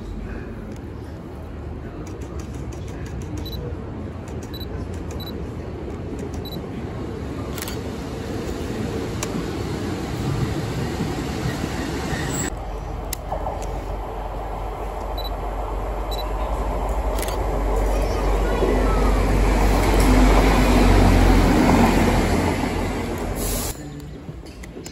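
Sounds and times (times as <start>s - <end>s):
diesel train rumble: 0.0s - 24.9s
diesel train droning: 7.0s - 23.9s.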